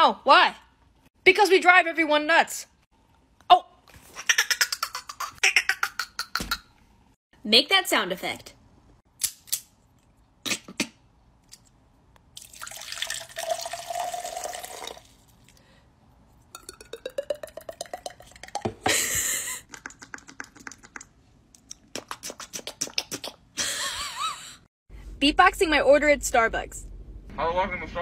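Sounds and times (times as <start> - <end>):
person imitating squeezing bottle: 10.4 - 11.0, 19.7 - 23.6.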